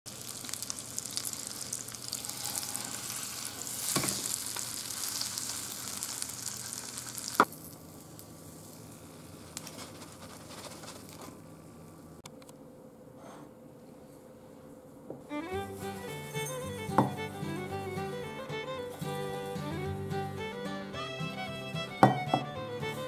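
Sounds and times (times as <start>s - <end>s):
toast sizzling in butter: 0.1s - 10.2s.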